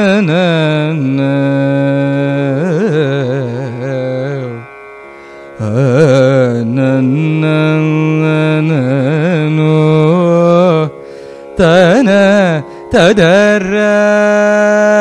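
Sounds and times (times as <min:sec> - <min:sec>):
man singing with ornaments: 0:00.0 - 0:04.7, 0:05.6 - 0:15.0.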